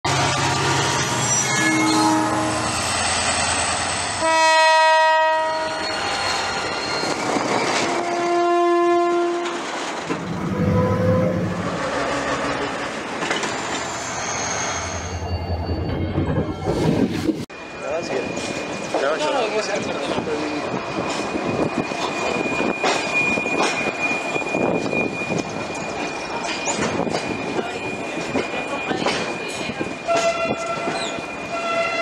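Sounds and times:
wagons rumbling over rails: 0.1 - 32.0
train horn blasts: 1.6 - 2.8, 4.2 - 6.0, 8.0 - 9.6, 10.4 - 12.6, 30.1 - 32.0
locomotive running past: 9.2 - 32.0.

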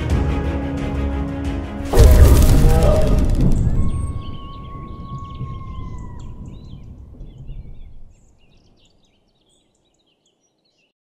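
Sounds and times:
low rumble: 1.8 - 8.2
small birds chirping: 2.0 - 10.9.

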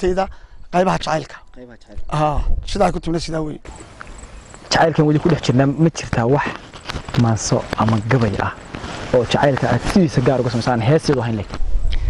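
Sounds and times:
man speaking: 0.0 - 3.7, 4.7 - 11.5
crickets chirping: 0.0 - 12.0.

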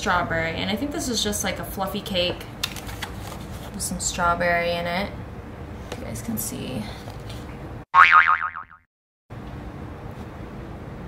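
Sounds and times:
cartoon boing sound effect: 8.0 - 8.8.

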